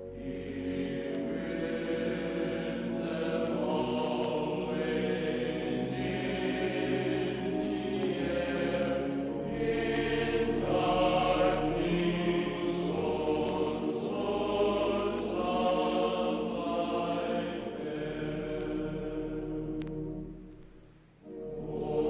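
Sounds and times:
choir singing long held notes: 0.0 - 22.0.

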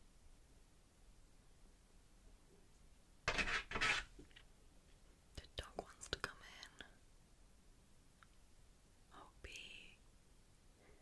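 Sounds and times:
woman whispering: 5.3 - 7.0, 9.1 - 10.1.

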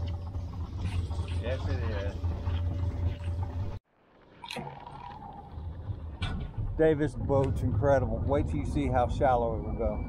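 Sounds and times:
boat engine idling: 0.0 - 3.8, 4.6 - 10.0.

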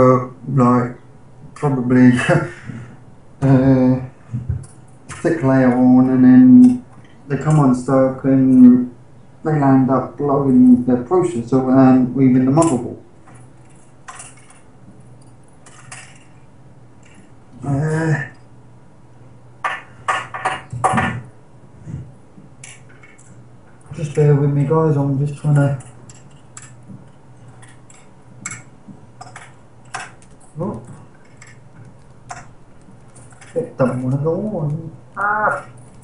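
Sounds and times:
faint low hum: 0.0 - 36.0.

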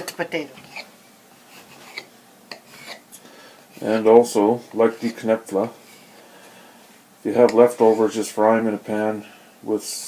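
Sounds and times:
hands rubbing dough: 0.0 - 3.1, 3.7 - 8.3.

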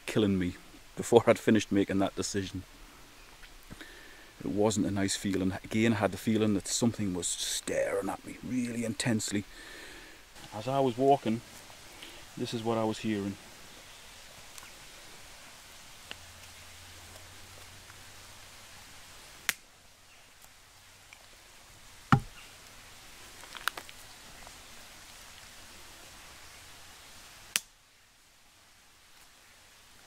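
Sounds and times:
twigs snapping: 19.4 - 19.6, 23.4 - 24.0, 27.5 - 27.7.

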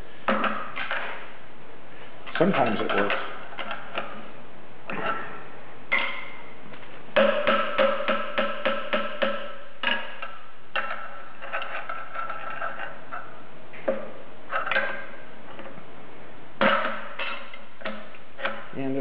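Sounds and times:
hammer striking steel pry bar: 7.2 - 11.6, 16.6 - 18.7
metal scraping: 10.8 - 13.4.

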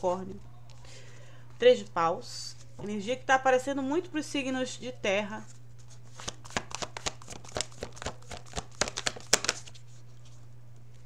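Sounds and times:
cards being shuffled: 5.5 - 10.5.

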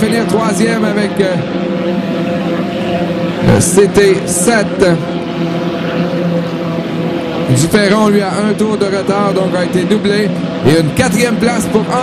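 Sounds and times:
racing boat engines droning: 0.0 - 12.0.

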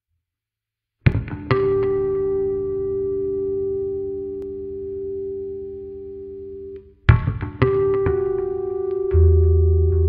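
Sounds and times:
electric bass guitar notes ringing: 1.1 - 10.0.

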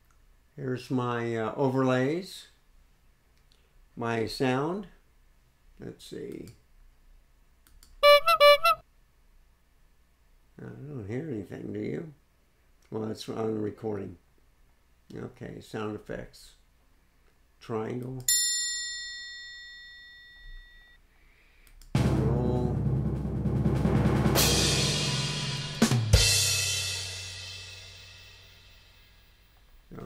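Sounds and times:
short electronic jingle: 8.0 - 8.8
triangle ringing: 18.3 - 21.0.

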